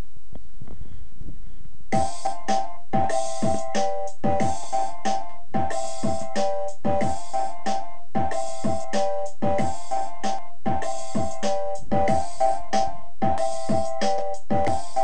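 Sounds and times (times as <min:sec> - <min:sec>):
soft low thumps: 0:00.0 - 0:15.0
chopped sampled melody: 0:01.9 - 0:15.0
deep kick drums: 0:03.0 - 0:04.6, 0:05.6 - 0:07.2, 0:08.2 - 0:09.9, 0:10.6 - 0:12.3, 0:13.2 - 0:15.0.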